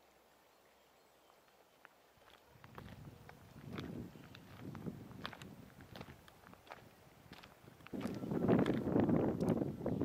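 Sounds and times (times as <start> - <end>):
wind blowing on microphone: 2.6 - 10.0.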